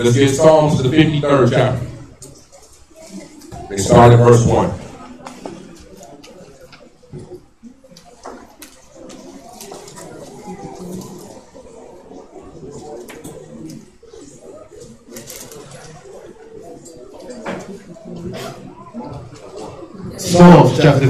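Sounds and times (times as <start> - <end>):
low murmured voices: 0.0 - 21.0.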